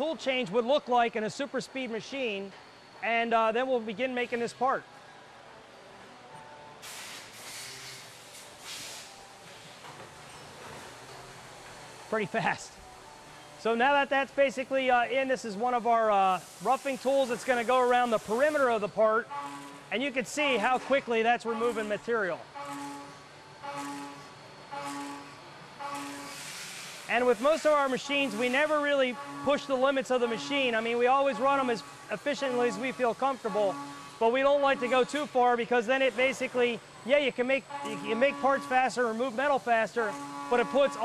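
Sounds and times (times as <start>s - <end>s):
air hissing bursts: 6.8s - 9.8s, 16.0s - 19.9s, 26.0s - 29.9s
low machine hum: 9.1s - 26.4s, 27.0s - 41.0s.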